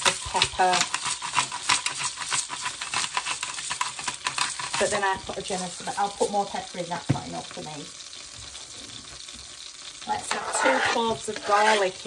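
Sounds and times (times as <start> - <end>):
pepper mill grinding: 0.0 - 6.6, 9.0 - 12.0
butter sizzling in a pot: 0.0 - 12.0.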